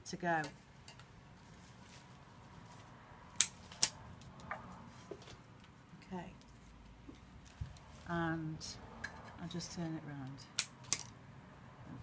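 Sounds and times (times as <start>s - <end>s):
scissors snipping flower stems: 3.4s - 4.0s.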